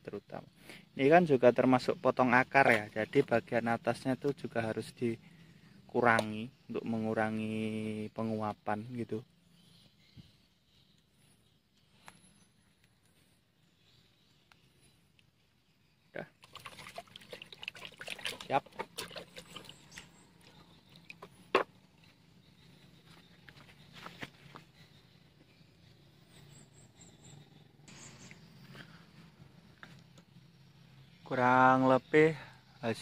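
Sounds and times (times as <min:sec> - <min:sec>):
hand splashing in bucket of water: 0:16.4 - 0:20.1.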